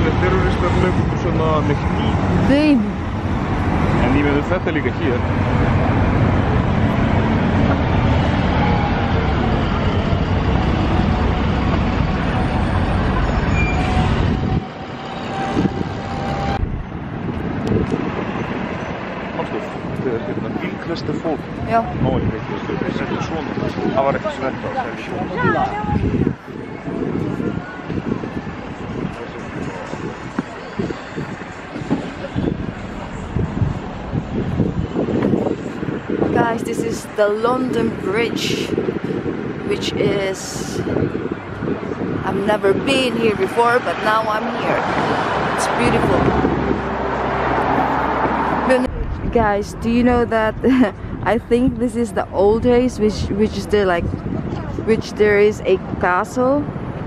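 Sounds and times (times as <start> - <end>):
cars and buses passing: 0.0 - 57.0
road traffic: 0.0 - 57.0
wind gusting on microphone: 0.0 - 57.0.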